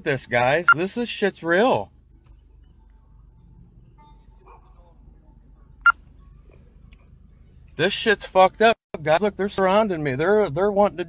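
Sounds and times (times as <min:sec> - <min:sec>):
low steady hum: 0:00.0 - 0:11.0
dog barking: 0:04.4 - 0:04.8.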